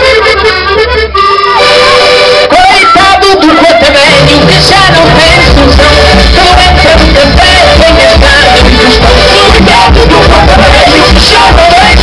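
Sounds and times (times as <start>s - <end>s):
bass: 0.0s - 12.0s
button accordion: 0.0s - 12.0s
keyboard: 0.0s - 12.0s
drums: 4.1s - 12.0s.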